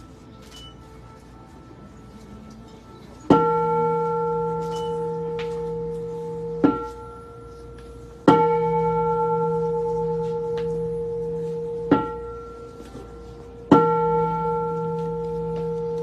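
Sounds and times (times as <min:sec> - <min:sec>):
bowl bell ringing: 0:03.3 - 0:16.0
striker damping bell: 0:03.3 - 0:16.0.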